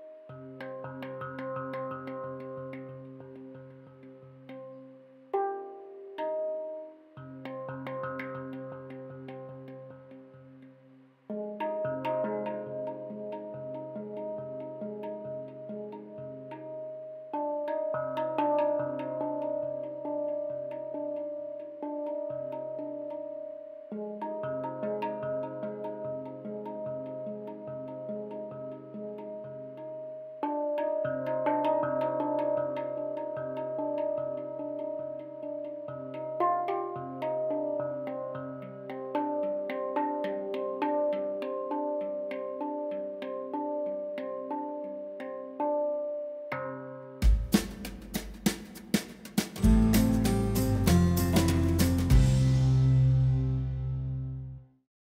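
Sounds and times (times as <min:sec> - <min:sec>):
handpan notes ringing: 0:00.0 - 0:10.3, 0:11.3 - 0:47.6, 0:49.6 - 0:54.2
low handpan bass note: 0:49.6 - 0:54.6.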